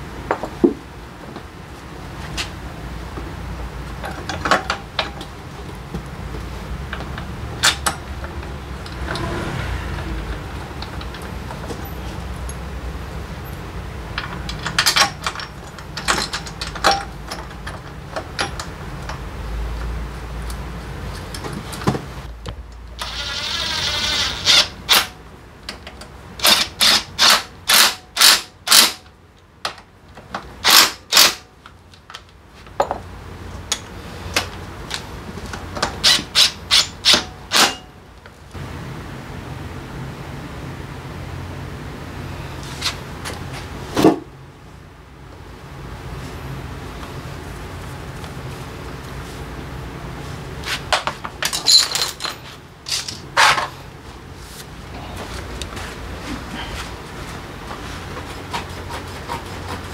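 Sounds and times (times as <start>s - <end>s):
impact wrench whirring and hammering: 23.0s - 25.1s, 35.8s - 37.8s.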